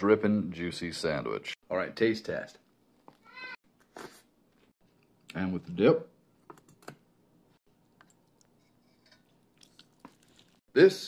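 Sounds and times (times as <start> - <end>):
soft wet biting sounds: 7.8 - 10.6.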